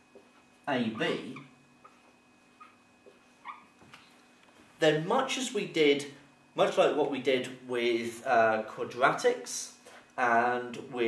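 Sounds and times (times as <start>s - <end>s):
marker squeaking on whiteboard: 0.1s - 3.8s.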